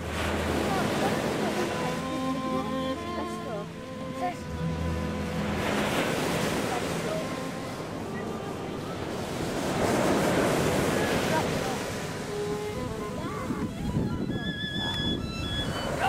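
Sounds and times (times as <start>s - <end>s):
surf washing onto beach: 0.0s - 2.8s, 3.6s - 14.0s
wind buffeting microphone: 3.9s - 16.0s.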